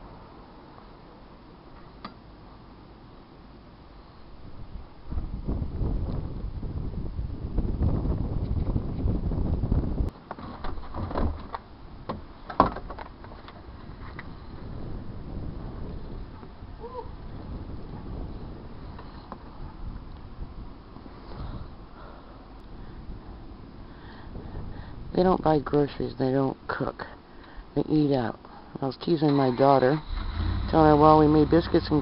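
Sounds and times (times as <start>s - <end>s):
wind buffeting microphone: 4.4s - 10.2s, 13.6s - 22.0s, 22.6s - 25.8s.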